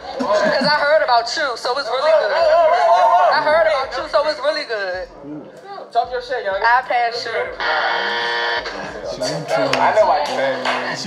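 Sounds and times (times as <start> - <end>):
steady buzzer tone: 7.6 - 8.9.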